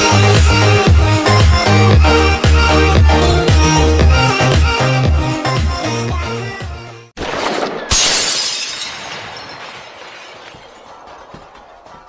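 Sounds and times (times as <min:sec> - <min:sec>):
breaking glass debris: 0:07.2 - 0:10.9
glass shattering crash: 0:07.2 - 0:11.0.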